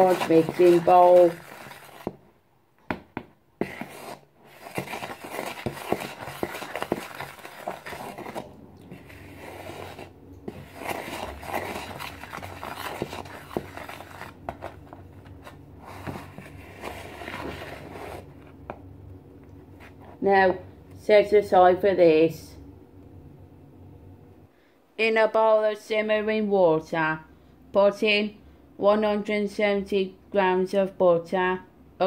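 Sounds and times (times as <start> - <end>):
wooden spoon stirring flour: 0.0 - 2.2, 3.2 - 18.8.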